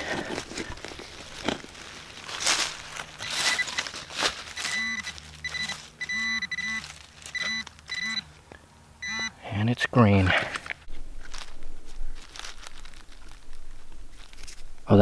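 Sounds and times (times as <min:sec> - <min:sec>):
metal detector short beeps: 0:03.2 - 0:03.8, 0:04.6 - 0:08.2, 0:09.0 - 0:09.3.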